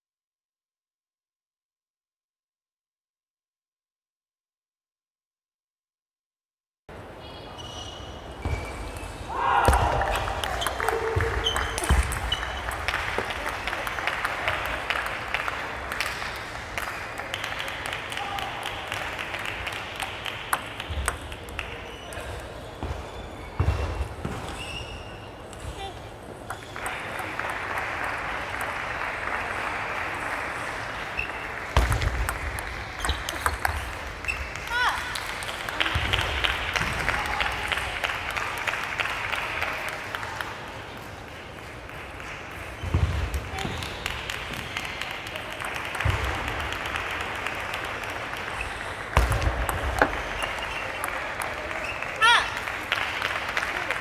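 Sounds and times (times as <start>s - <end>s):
people clapping: 9.3s - 22.6s, 25.8s - 54.0s.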